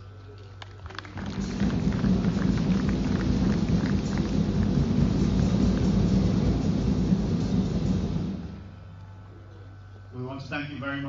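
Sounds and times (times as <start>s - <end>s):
audience applauding: 0.6s - 5.2s.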